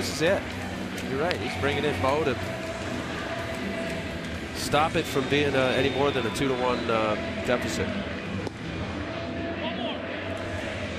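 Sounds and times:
stadium crowd cheering and applauding: 0.0s - 10.9s.

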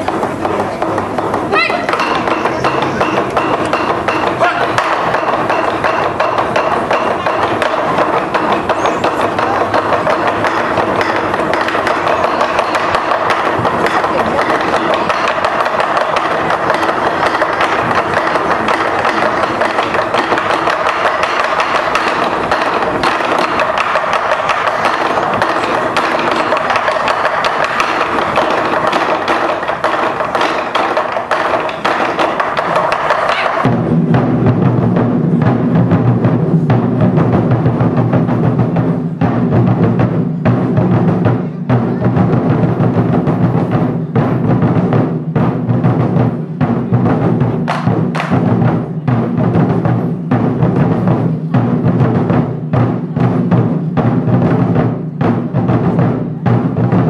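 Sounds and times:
barrel drums beaten with sticks: 0.0s - 57.0s.

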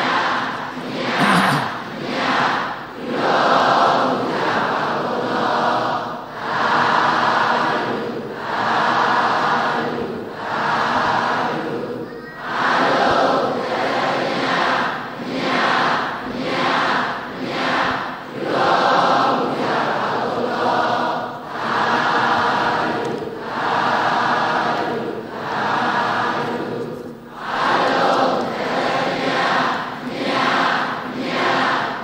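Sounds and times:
congregation chanting in unison: 0.0s - 32.0s.

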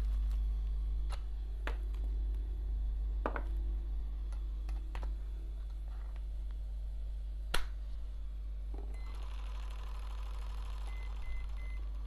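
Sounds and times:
low steady hum: 0.0s - 12.0s
steady electric buzz: 0.0s - 12.0s.

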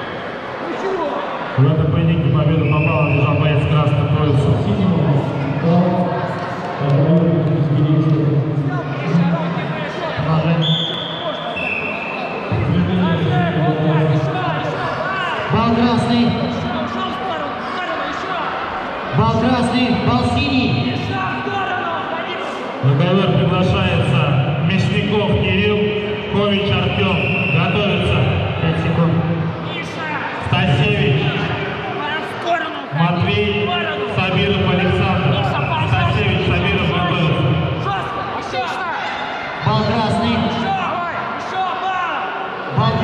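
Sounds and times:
sports hall noise: 0.0s - 43.0s
people shouting in sports hall: 16.4s - 19.2s, 20.9s - 22.8s, 36.8s - 43.0s.

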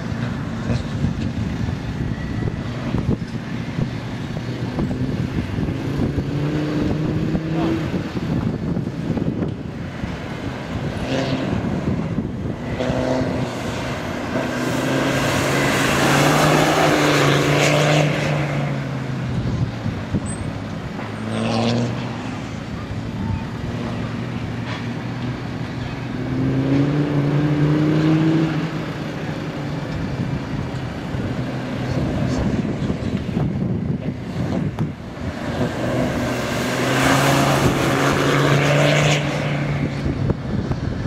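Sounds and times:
diesel engine accelerating: 0.0s - 41.0s.

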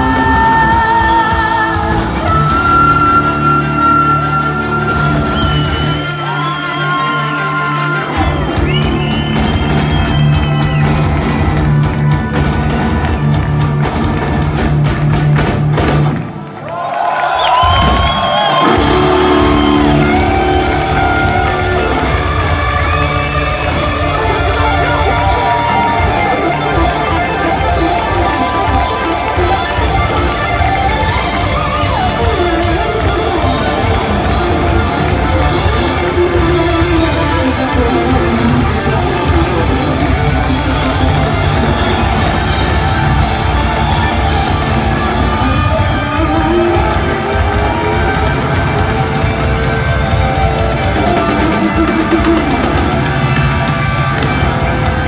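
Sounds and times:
heavy metal band playing: 0.0s - 16.5s, 17.6s - 55.0s.

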